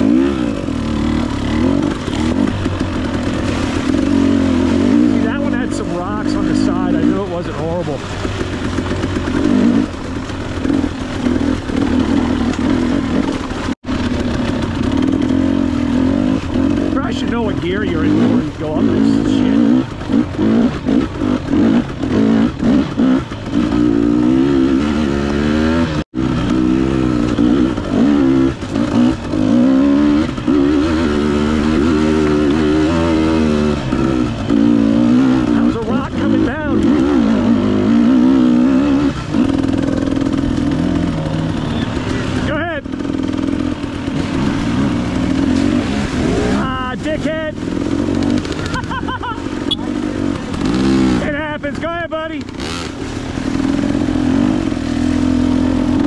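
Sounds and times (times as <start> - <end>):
dirt bike engine revving: 0.0 - 56.0
second dirt bike engine: 0.0 - 56.0.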